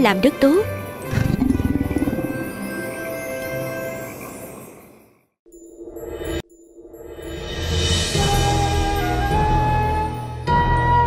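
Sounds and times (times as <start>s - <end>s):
low pulsing animal growl: 1.0s - 5.0s.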